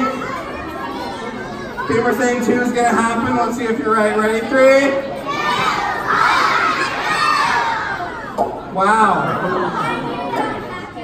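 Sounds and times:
children shouting in unison: 5.2s - 8.4s.

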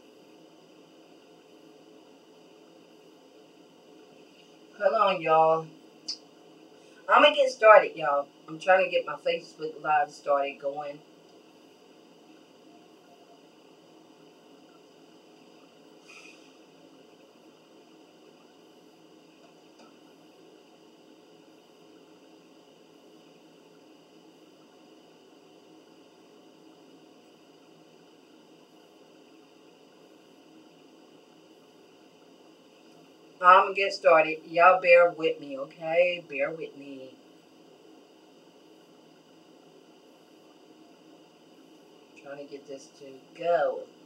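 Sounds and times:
steady hiss: 0.0s - 44.0s.

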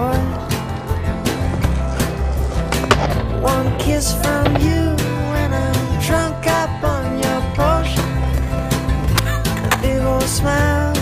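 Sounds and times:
skateboard wooden clack: 1.3s - 5.1s.

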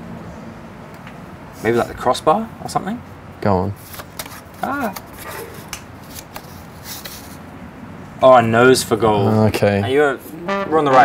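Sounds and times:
paper card flicks and rustles: 3.8s - 7.4s.

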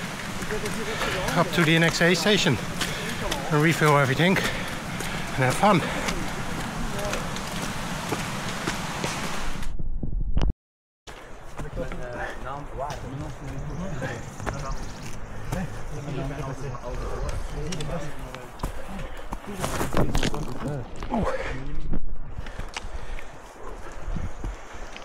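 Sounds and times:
footsteps on muddy trail: 0.0s - 9.6s, 11.1s - 21.6s, 22.2s - 25.0s.

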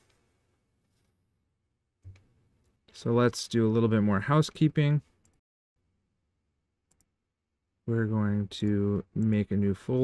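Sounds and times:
man speaking: 3.0s - 5.1s, 7.8s - 10.0s.

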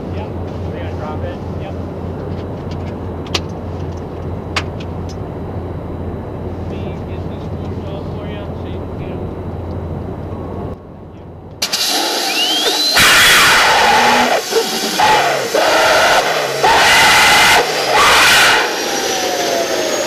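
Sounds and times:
jet machinery droning: 0.0s - 20.0s.

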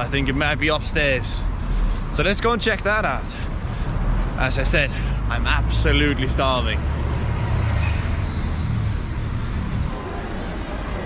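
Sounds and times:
passing cars rumbling: 0.0s - 11.0s.

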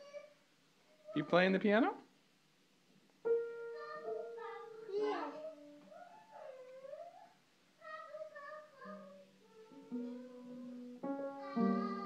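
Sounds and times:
piano notes ringing: 3.2s - 5.8s, 9.8s - 12.0s
child singing: 3.5s - 12.0s.

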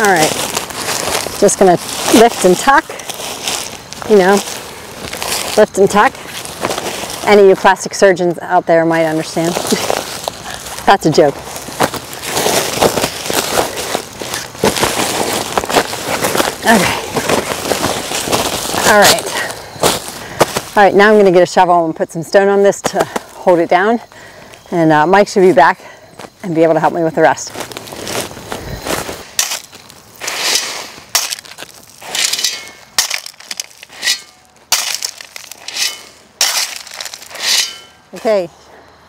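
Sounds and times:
shovel scraping gravel: 0.0s - 7.5s, 9.2s - 20.8s, 27.6s - 38.4s
plastic fabric crackling and rustling: 0.2s - 5.6s, 11.4s - 19.3s
tossed stones rattling: 31.2s - 37.4s.

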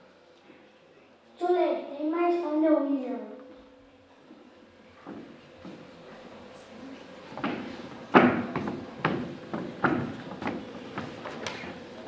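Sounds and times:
faint hall murmur: 0.0s - 12.0s
footstep on wooden stage: 5.0s - 5.9s, 7.3s - 11.5s.

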